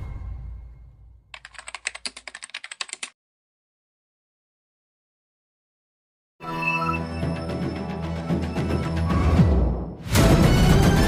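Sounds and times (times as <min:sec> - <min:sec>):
keyboard typing clicks: 0:01.4 - 0:03.2.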